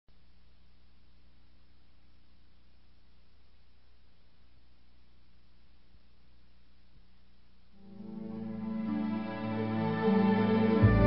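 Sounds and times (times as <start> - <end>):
tape hiss: 0.0 - 11.0
low electrical hum: 0.1 - 9.9.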